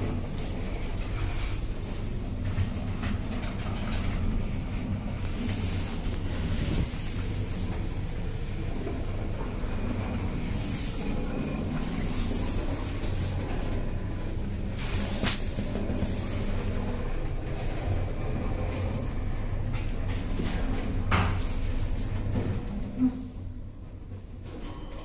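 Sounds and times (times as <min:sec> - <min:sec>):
elevator car humming and rumbling: 0:00.0 - 0:25.0.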